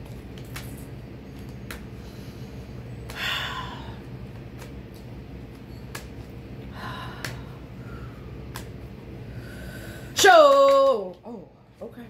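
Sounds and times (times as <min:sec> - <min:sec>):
low steady hum: 0:00.0 - 0:12.0
woman breathing out heavily: 0:02.0 - 0:04.0, 0:06.7 - 0:08.4, 0:09.2 - 0:10.2.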